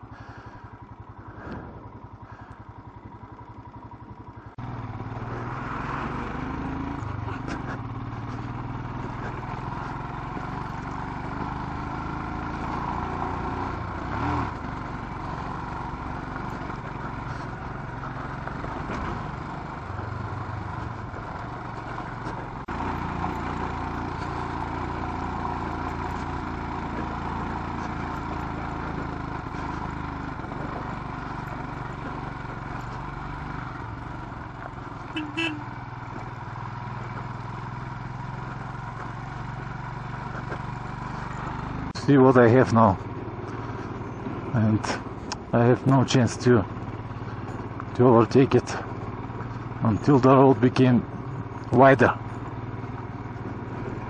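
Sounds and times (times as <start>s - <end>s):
engine knock: 0.0s - 4.6s
motorcycle engine running: 0.0s - 54.0s.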